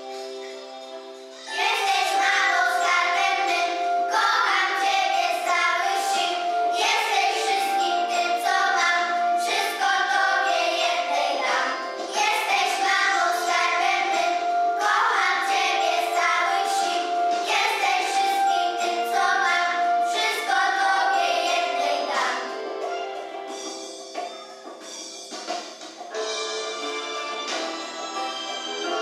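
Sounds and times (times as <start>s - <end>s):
young children singing: 1.2s - 23.1s.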